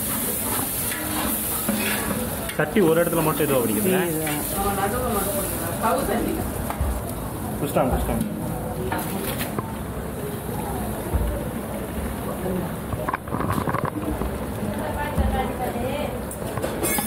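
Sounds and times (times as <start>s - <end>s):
masala sizzling: 0.0s - 17.0s.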